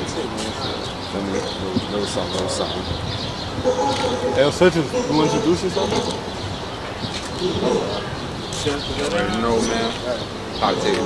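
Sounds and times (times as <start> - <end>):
indistinct voices talking: 0.0 - 11.0
clear speech: 4.0 - 6.2, 8.6 - 11.0.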